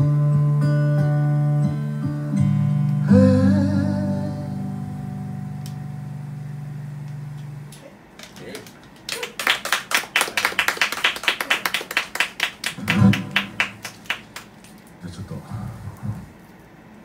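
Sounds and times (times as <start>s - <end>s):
people clapping: 7.7s - 15.0s.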